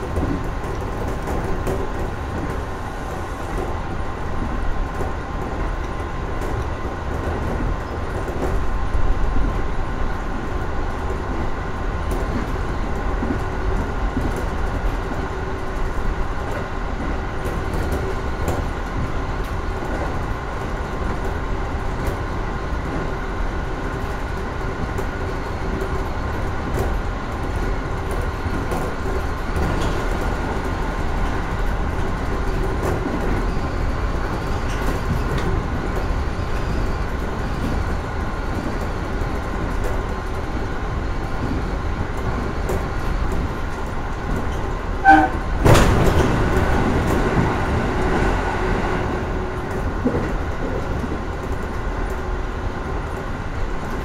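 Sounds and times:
electric train running hum and whine: 0:00.0 - 0:54.0
oncoming train passing: 0:00.0 - 0:54.0
rail-joint clicks: 0:24.8 - 0:54.0.

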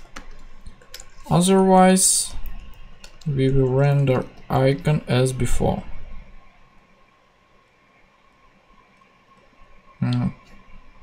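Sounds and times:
faint steady hiss and hum: 0:00.0 - 0:11.0.

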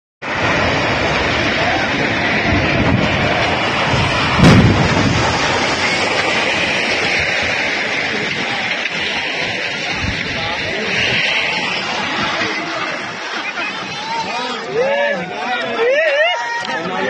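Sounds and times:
sharp boom: 0:00.2 - 0:13.2
bridge collapsing rumbling crash: 0:00.2 - 0:15.1.

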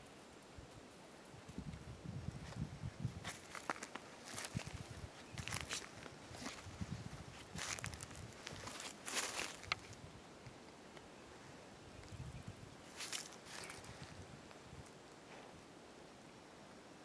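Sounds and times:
footsteps crunching through dry leaves: 0:02.4 - 0:10.0, 0:12.9 - 0:14.2.

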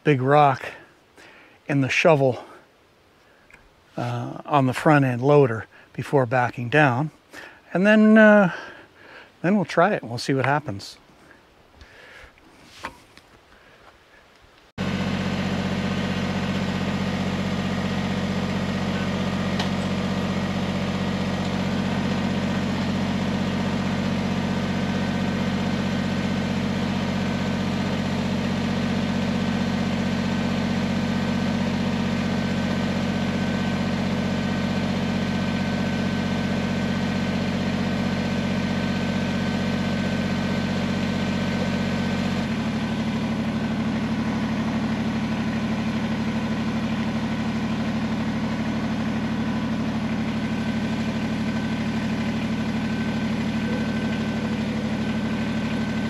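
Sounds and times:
tractor diesel engine running: 0:00.0 - 0:10.8, 0:14.8 - 0:56.0.

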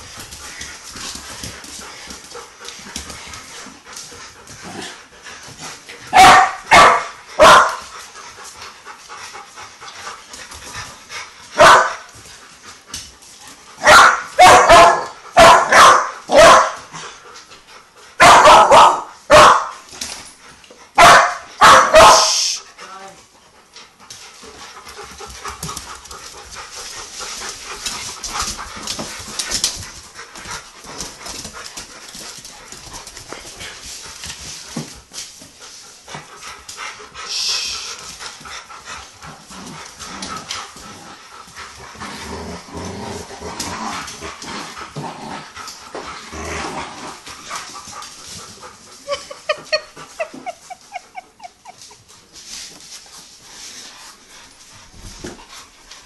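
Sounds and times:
puppy barking: 0:06.1 - 0:07.8, 0:11.6 - 0:12.1, 0:13.8 - 0:16.8, 0:18.2 - 0:19.8, 0:21.0 - 0:22.4.

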